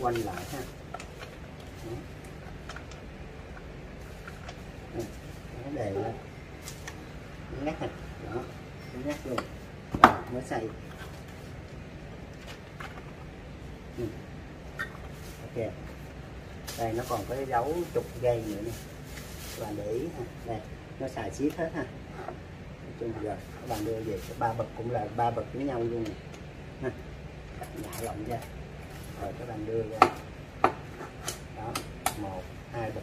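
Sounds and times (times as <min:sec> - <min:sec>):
steady low background hum: 0:00.0 - 0:33.0.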